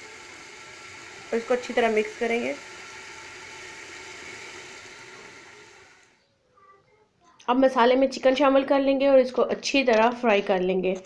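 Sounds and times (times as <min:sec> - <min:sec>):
masala sizzling in oil: 0:00.0 - 0:06.2.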